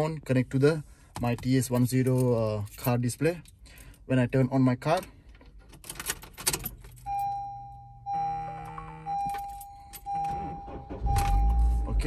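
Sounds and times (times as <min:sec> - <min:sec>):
car keys jangling: 0:01.2 - 0:07.5, 0:09.2 - 0:11.7
dashboard warning chime: 0:07.0 - 0:12.0.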